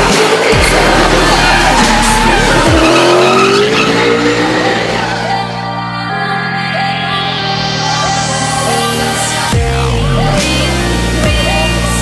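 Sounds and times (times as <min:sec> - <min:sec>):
car engine revving: 0:00.0 - 0:05.6
background music: 0:00.0 - 0:12.0
tyres squealing: 0:00.5 - 0:05.3.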